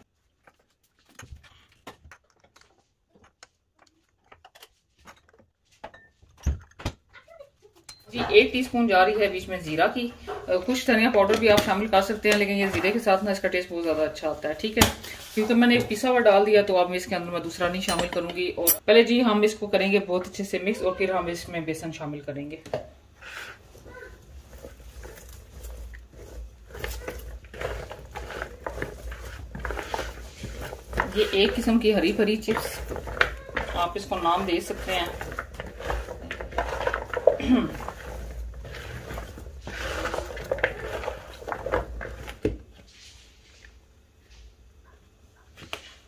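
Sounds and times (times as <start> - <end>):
metal spoon knocking on jars: 17.7 - 18.8
potato pieces clacking in a bowl: 24.2 - 42.5.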